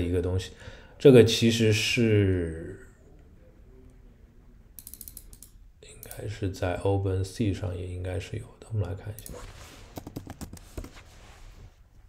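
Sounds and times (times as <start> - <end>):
computer mouse clicks: 4.8 - 6.2.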